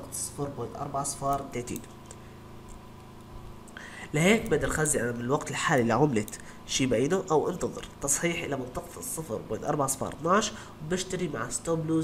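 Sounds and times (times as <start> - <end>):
man speaking: 0.0 - 1.9, 4.0 - 12.0
faint computer clicking: 1.2 - 6.5.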